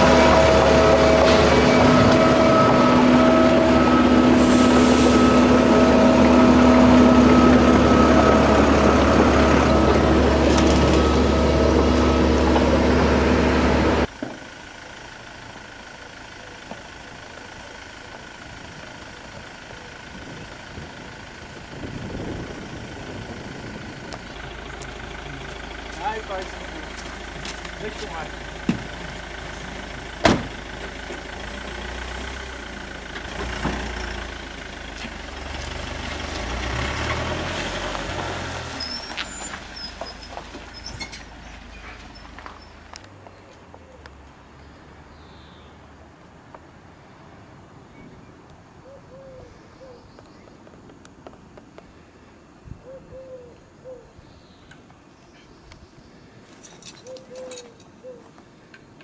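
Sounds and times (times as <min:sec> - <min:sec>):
truck diesel engine running: 0:00.0 - 0:43.2
outdoor ambience: 0:00.0 - 0:59.0.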